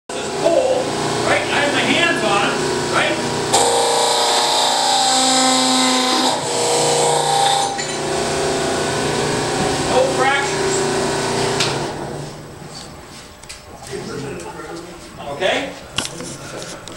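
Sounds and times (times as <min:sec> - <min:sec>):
people talking: 0:00.1 - 0:03.2, 0:09.9 - 0:10.6, 0:13.7 - 0:16.6
hydraulic press motor hum: 0:00.2 - 0:12.7.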